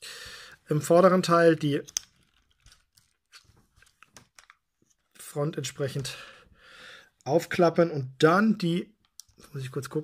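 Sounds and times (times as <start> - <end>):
plastic toy parts clicking: 1.8 - 4.6.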